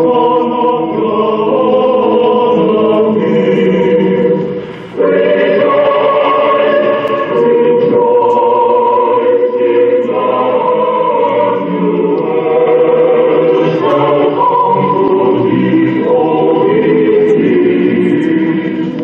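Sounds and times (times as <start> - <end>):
choir singing long chords: 0.0 - 19.0.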